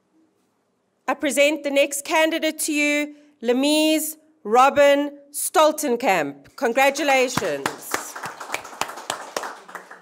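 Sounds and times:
people clapping: 6.7s - 10.0s.

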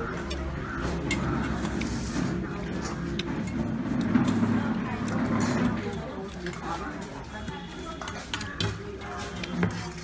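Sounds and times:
utensils clinking on steel bowls: 0.0s - 10.0s.

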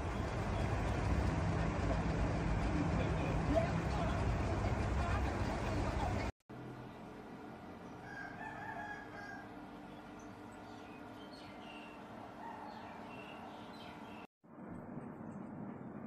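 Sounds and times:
rooster crowing: 8.0s - 9.6s, 12.4s - 13.4s.

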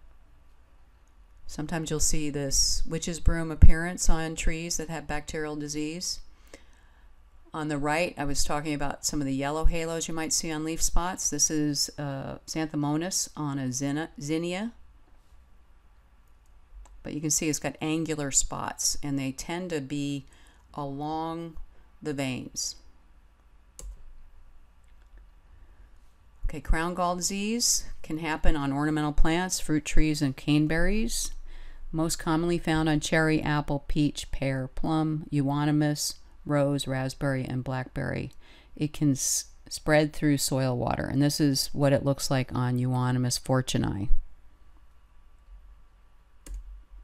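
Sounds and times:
faint low hum: 0.0s - 47.0s
faint room hiss: 0.0s - 47.0s
computer mouse click: 23.8s - 24.0s, 46.4s - 46.8s.

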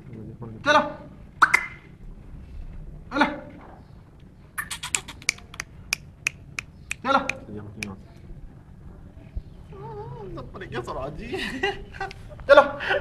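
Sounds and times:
sharp clicks: 4.6s - 8.0s.

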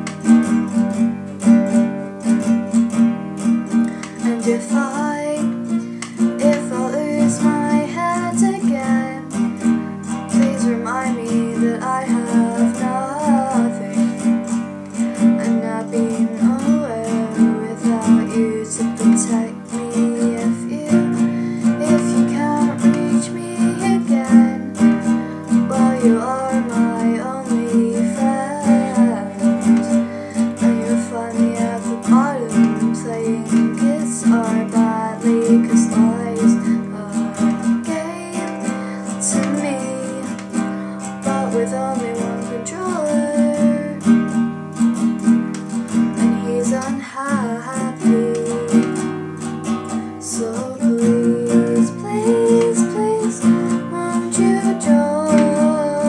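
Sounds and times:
classical guitar strumming: 0.0s - 56.0s
woman singing: 0.0s - 56.0s.

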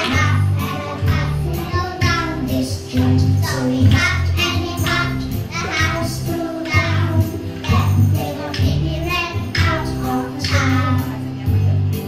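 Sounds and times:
children singing together: 0.0s - 11.2s
music backing track with bass: 0.0s - 12.0s.

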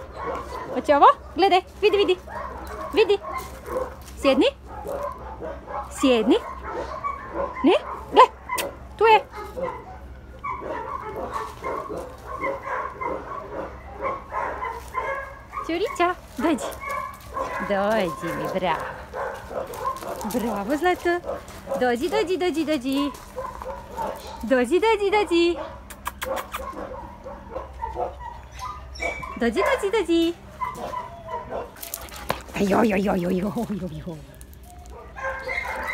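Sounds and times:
dog barking: 0.0s - 1.5s, 2.2s - 22.2s, 22.9s - 24.5s, 25.5s - 30.0s, 30.6s - 32.3s, 34.8s - 35.9s.

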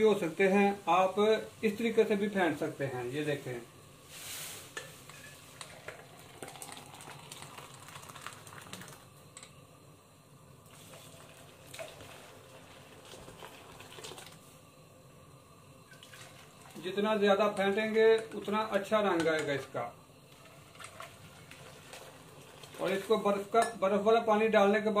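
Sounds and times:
tea pouring and splashing: 4.1s - 9.6s, 10.6s - 14.6s, 15.8s - 18.5s, 19.2s - 23.6s.

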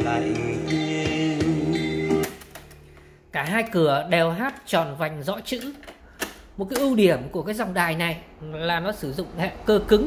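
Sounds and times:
song from cassette player: 0.0s - 2.9s
tape deck stop click: 2.1s - 2.9s.

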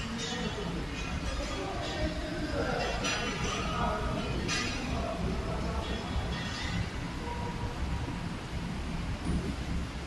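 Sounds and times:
machine and conveyor rumble: 0.0s - 10.0s.

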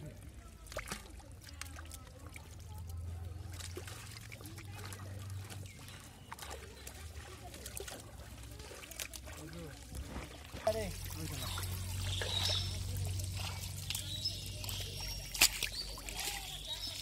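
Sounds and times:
mud and water sloshing: 0.0s - 17.0s.

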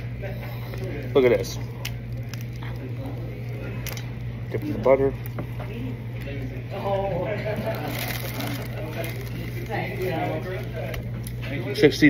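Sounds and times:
soft squishes: 0.0s - 11.6s
steady low hum: 0.0s - 12.0s.

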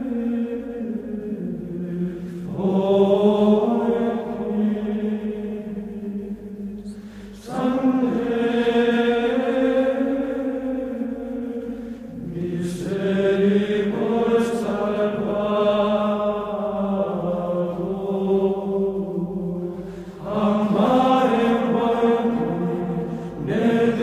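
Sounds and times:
slow vocal chant: 0.0s - 24.0s.

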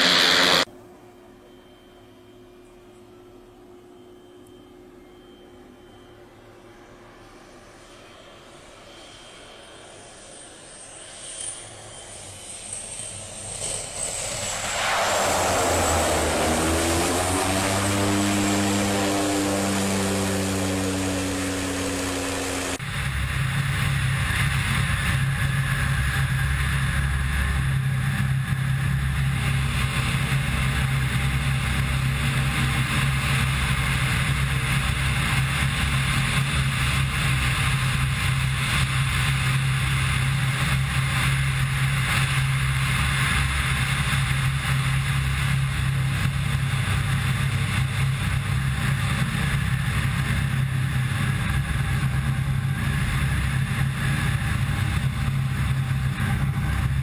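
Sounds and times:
propeller plane passing: 0.0s - 0.7s, 6.8s - 57.0s
engine and propeller drone: 0.0s - 57.0s
wind rush: 14.0s - 22.9s.

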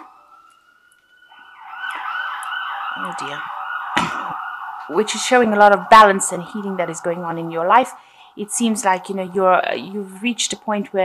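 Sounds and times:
emergency siren warbling: 0.0s - 10.6s.

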